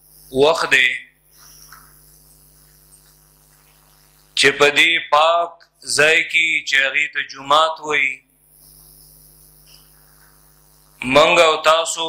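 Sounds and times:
low hum with hiss: 0:00.0 - 0:12.0.

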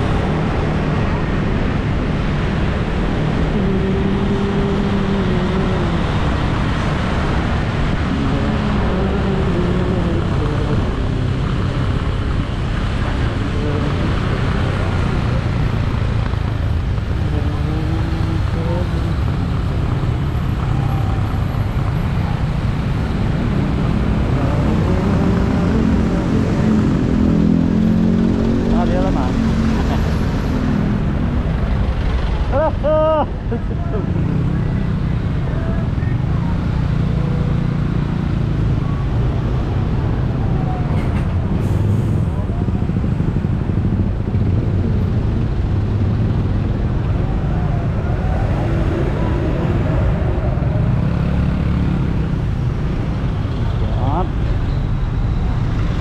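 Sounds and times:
passing traffic: 0:00.0 - 0:56.0
wind and road noise: 0:00.0 - 0:56.0.

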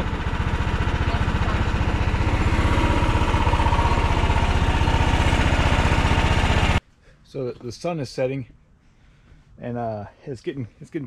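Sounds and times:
small engine idling: 0:00.0 - 0:06.8.

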